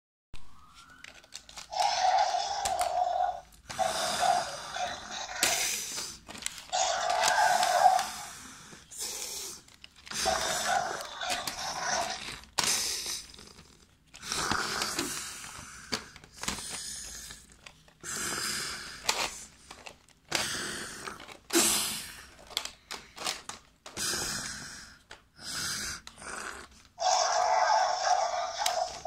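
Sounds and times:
person voicing dinosaur roars: 1.7 - 5.7, 6.7 - 8.3, 10.2 - 12.3, 26.2 - 29.0.

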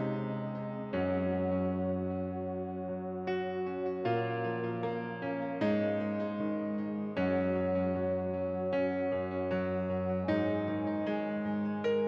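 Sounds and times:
sustained keyboard chords: 0.0 - 12.0.

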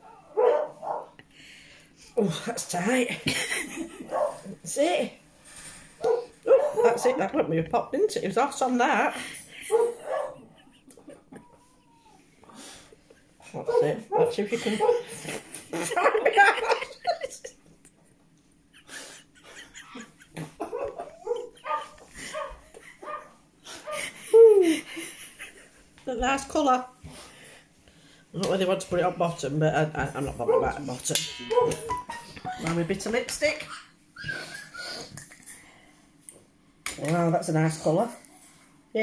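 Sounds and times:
woman's stifled laughter: 9.1 - 13.2, 14.5 - 17.6, 18.7 - 25.8.

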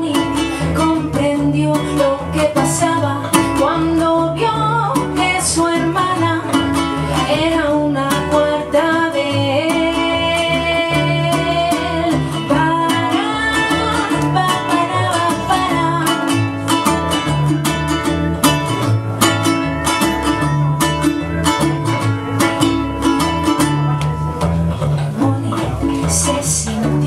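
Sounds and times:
woman singing: 0.0 - 17.2, 25.0 - 27.0
plucked double bass: 0.0 - 27.0
ukulele strumming: 0.0 - 27.0.

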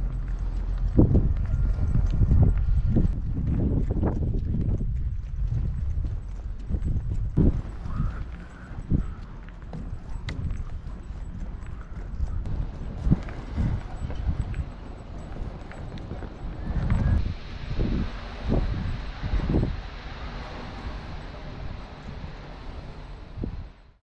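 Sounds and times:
footsteps on wooden footbridge: 0.0 - 17.2
wind rumble on microphone: 0.0 - 24.0.

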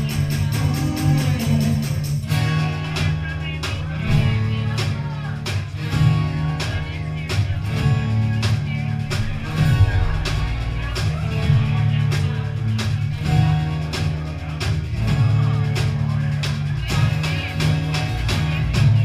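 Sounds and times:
steady drum beat: 0.0 - 19.0
live band playing: 8.9 - 19.0.

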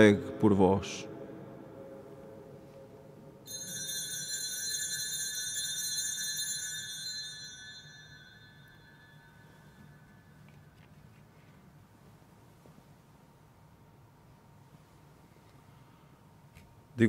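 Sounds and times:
altar bell ringing: 3.4 - 10.5.

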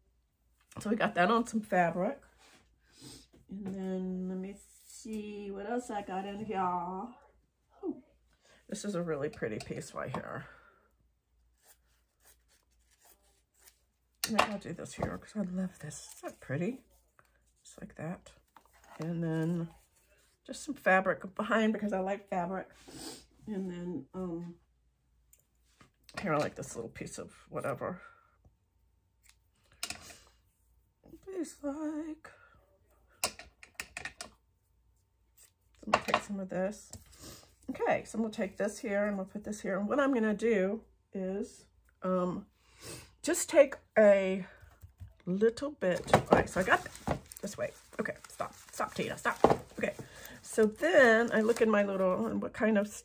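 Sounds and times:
paper and fabric crinkling: 46.3 - 52.3.

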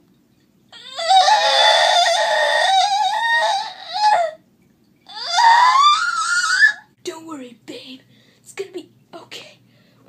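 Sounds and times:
child wailing: 0.8 - 4.4, 5.1 - 6.9.

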